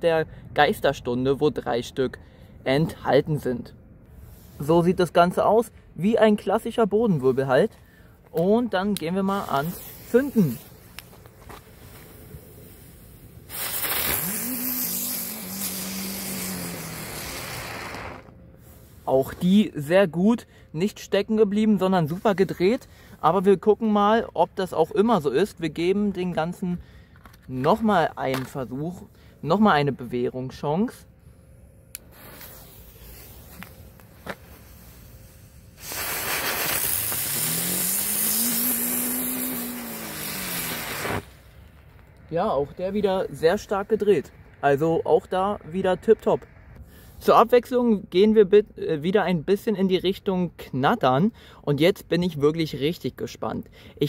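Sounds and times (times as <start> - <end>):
firework spinner hissing: 9.3 - 19.1, 32.0 - 41.5
low humming tone: 29.0 - 35.8.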